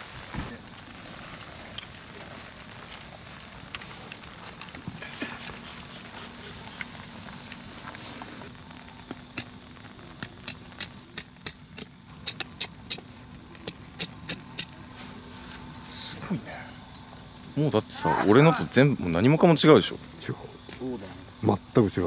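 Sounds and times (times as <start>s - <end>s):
hammering metal tent stake: 9.1s - 9.6s, 10.2s - 14.8s.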